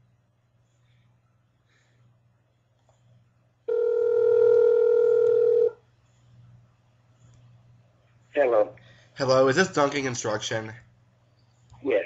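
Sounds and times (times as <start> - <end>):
faint low line hum: 0.0 - 12.0
telephone ringback tone: 3.7 - 5.8.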